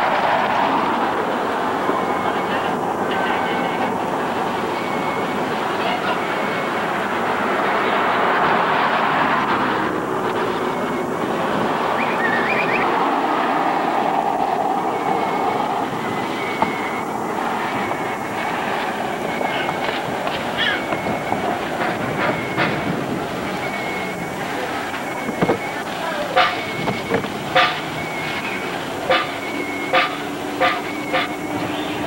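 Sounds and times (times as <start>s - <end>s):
dense outdoor background din: 0.0s - 32.0s.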